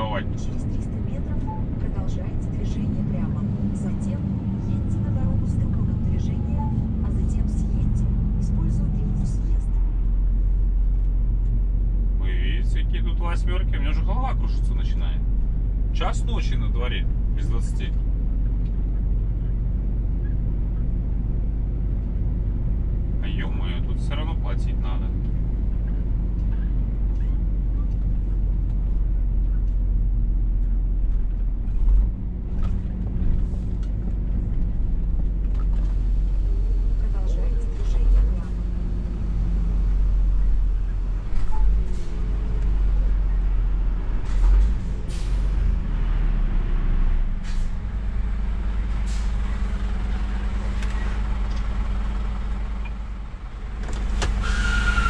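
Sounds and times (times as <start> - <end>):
truck diesel engine drone: 0.0 - 55.0.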